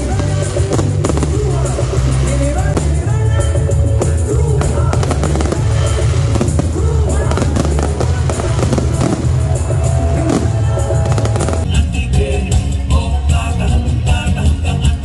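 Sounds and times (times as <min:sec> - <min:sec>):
fireworks crackling and popping: 0:00.0 - 0:11.7
loud music with heavy bass: 0:00.0 - 0:15.0.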